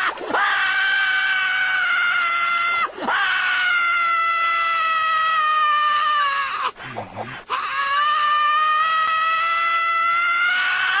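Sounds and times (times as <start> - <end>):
high-pitched scream: 0.0 - 6.7, 7.5 - 11.0.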